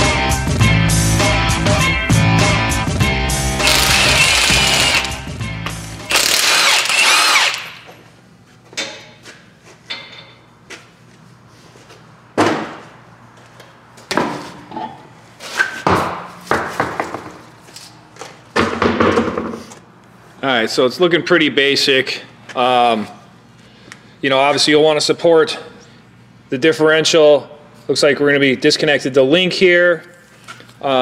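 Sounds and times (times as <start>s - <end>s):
power tool bursts: 3.6s - 5.3s, 6.0s - 7.9s.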